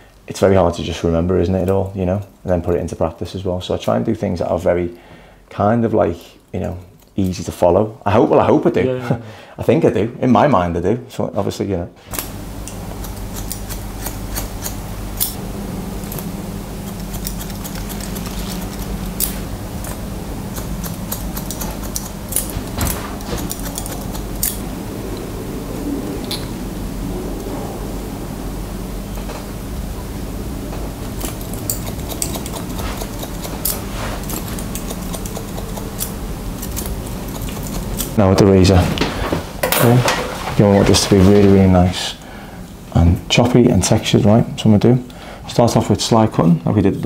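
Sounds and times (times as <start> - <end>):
steady low hum: 0.0 - 47.0
scissors snipping hair: 12.2 - 15.4, 16.9 - 24.6, 31.2 - 38.2.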